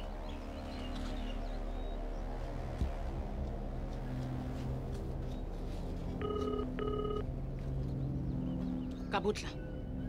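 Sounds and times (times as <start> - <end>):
telephone ringback tone: 6.2 - 7.2.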